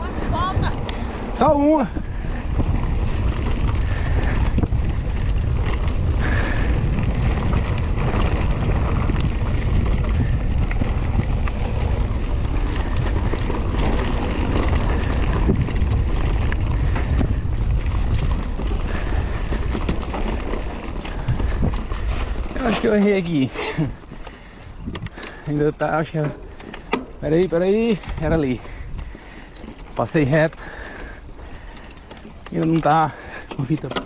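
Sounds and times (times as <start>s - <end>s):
wind on camera microphone: 0.0s - 22.9s, 23.8s - 25.2s
bike clicks and rattles: 0.0s - 34.0s
tyres rolling on dirt: 0.0s - 34.0s.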